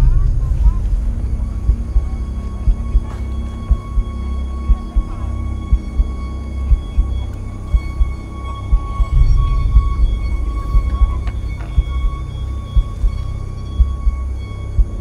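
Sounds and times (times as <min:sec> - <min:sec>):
low drone: 0:00.0 - 0:15.0
low thuds: 0:00.0 - 0:15.0.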